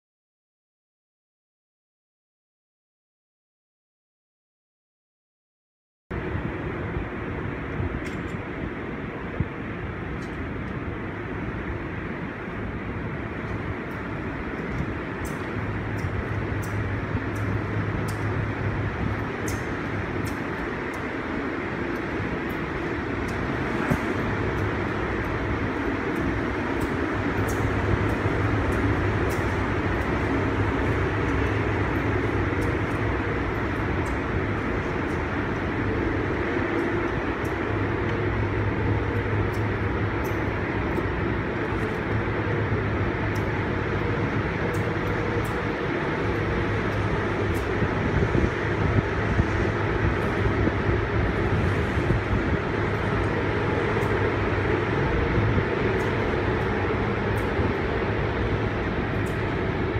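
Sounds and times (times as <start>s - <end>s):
constant low hum: 6.1s - 59.9s
moving ship rumble: 6.1s - 59.9s
wind rumbling: 6.1s - 59.9s.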